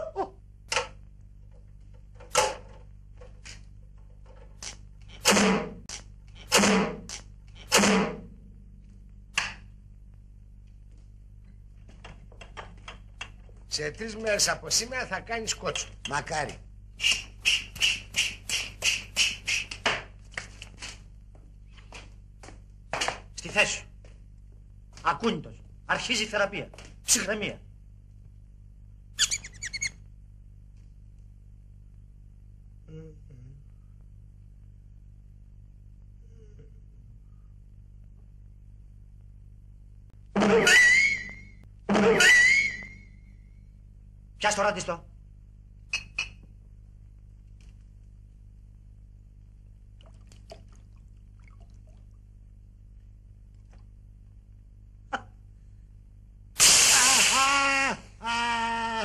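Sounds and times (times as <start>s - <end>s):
faint steady hum: 0.0s - 59.0s
high bird-like chirps: 29.2s - 30.0s
man crying out in pain: 57.0s - 59.0s.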